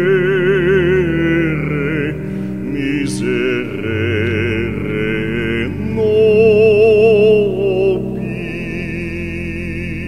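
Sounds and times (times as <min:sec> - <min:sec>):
man singing bass with vibrato: 0:00.0 - 0:10.0
sustained accompaniment chord: 0:00.0 - 0:10.0.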